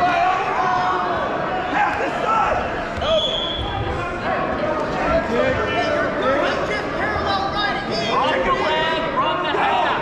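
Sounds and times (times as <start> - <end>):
people shouting and calling out: 0.0 - 10.0.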